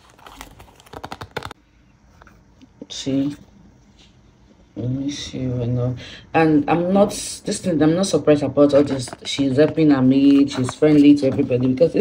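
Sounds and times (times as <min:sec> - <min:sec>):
plastic pages rustling: 0:00.0 - 0:01.6, 0:08.6 - 0:12.0.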